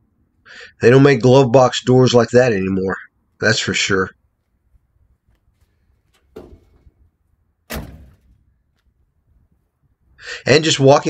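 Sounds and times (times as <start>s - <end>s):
car door slamming: 7.7s - 8.3s
car door thud: 7.7s - 8.4s.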